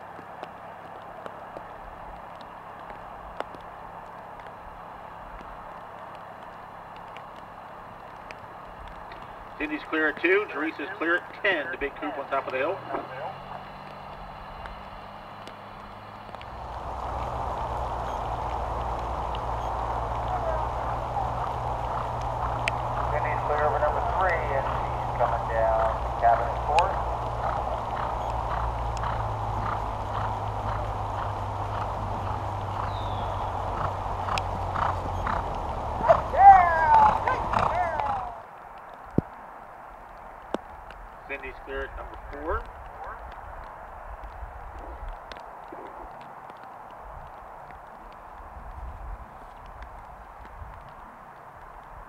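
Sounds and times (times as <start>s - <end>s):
muffled voices talking: 9.6s - 13.4s, 23.0s - 27.1s, 41.3s - 43.2s.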